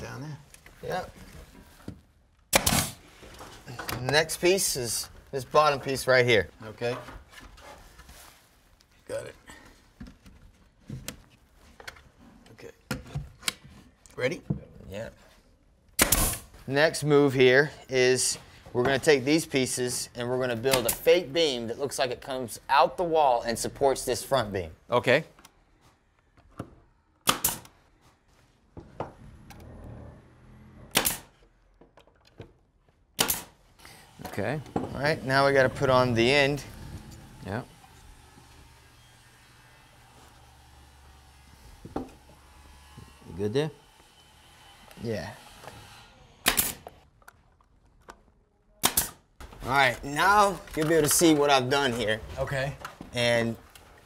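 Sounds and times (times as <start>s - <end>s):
nail gun firing into wood: 2.5s - 3.0s, 16.0s - 16.5s, 27.2s - 27.7s, 30.9s - 31.4s, 33.2s - 33.6s, 46.4s - 47.0s, 48.8s - 49.2s.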